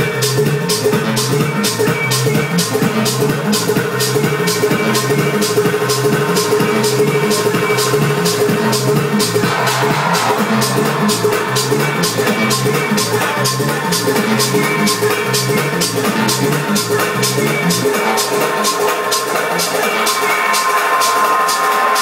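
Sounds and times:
electronic dance music: 0.0s - 22.0s
noisy swell: 9.1s - 13.6s.

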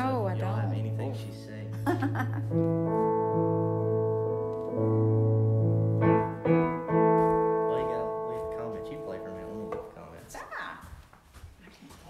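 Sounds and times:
electronic piano chords: 0.0s - 10.2s.

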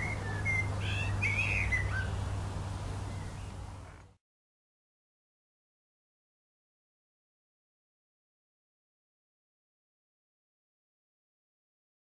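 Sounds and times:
blackbird singing: 0.0s - 2.3s, 3.0s - 4.0s.

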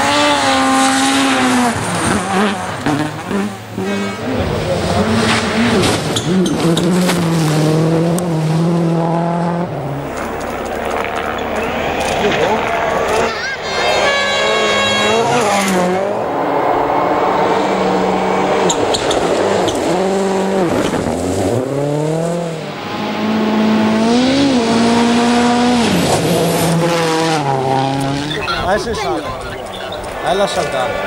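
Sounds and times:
rally cars revving past on gravel: 0.0s - 28.6s.

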